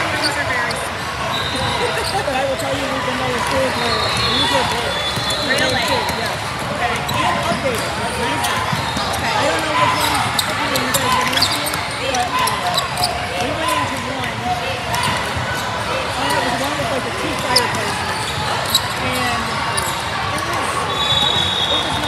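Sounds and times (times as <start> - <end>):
shoe squeaks: 0.0 - 14.1, 14.9 - 22.0
chatter of many voices: 0.0 - 22.0.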